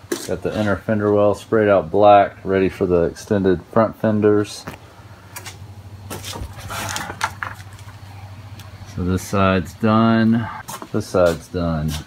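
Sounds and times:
low steady hum: 0.0s - 11.7s.

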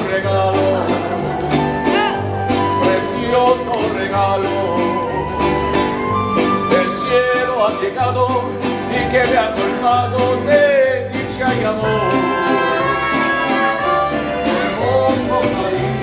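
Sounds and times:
person singing: 0.0s - 5.4s, 6.6s - 16.0s
acoustic guitars strumming: 0.0s - 16.0s.

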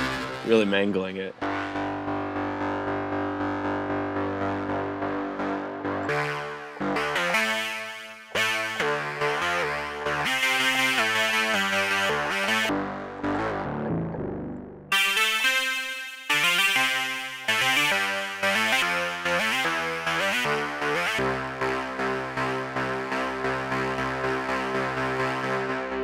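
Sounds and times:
distorted synth chords pulsing: 0.0s - 15.6s, 16.3s - 26.0s.

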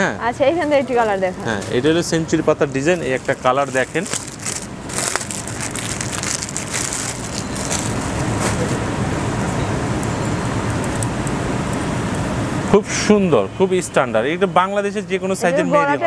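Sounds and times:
plastic packet crinkling: 2.8s - 8.8s.

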